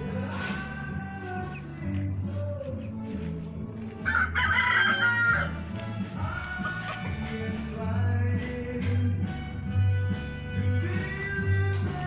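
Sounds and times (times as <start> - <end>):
background music: 0.0 - 12.0
rooster crowing: 4.0 - 5.6.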